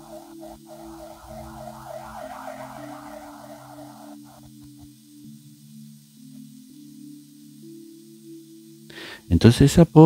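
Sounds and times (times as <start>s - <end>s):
synthesizer pad chords: 0.0s - 4.8s.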